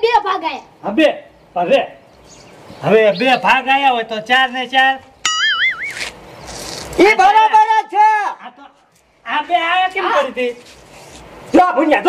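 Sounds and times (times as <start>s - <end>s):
wobbling twangy tone: 5.3s - 6.0s.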